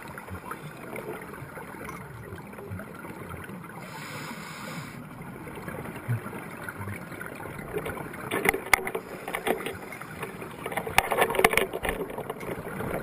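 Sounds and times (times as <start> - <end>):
steady underwater hiss: 0.0 - 8.2, 8.8 - 11.0
regulator bubbles crackling: 0.0 - 13.0.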